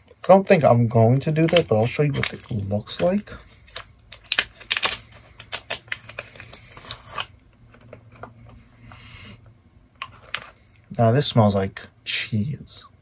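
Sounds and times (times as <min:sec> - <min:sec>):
paper wrapping crinkling: 0:01.3 - 0:07.3.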